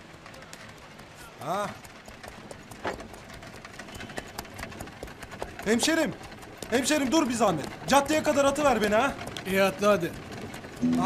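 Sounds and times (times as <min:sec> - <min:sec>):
horse hooves clip-clopping on dirt: 0:00.0 - 0:10.8.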